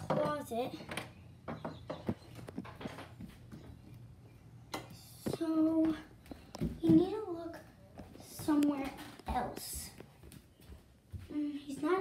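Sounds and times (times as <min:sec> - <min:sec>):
footsteps on hardwood floor: 0:05.2 - 0:12.0.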